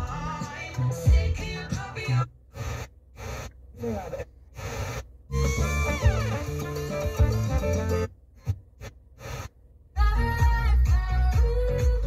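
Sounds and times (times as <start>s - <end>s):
car radio playing music: 0.0s - 12.0s.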